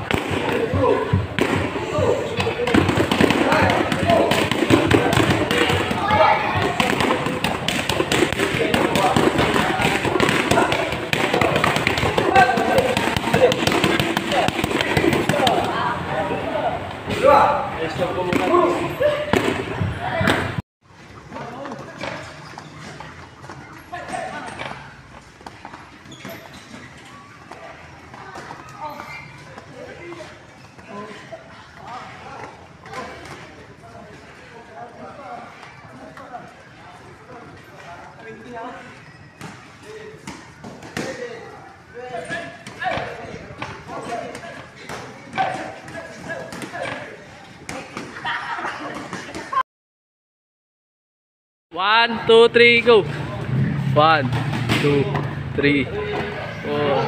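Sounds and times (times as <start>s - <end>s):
boxing gloves smacking mitts: 0.0s - 15.8s
voices talking: 0.0s - 20.6s, 51.8s - 57.0s
sharp thuds and slaps: 54.2s - 55.3s.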